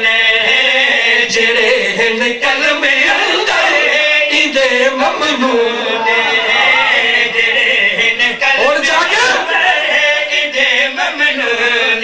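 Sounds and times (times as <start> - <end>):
man chanting melodically: 0.0 - 12.0.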